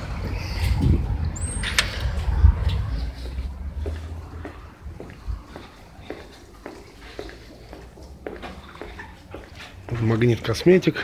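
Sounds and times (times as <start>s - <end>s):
low rumble: 0.0s - 6.0s
footsteps on tiled floor: 2.0s - 11.0s.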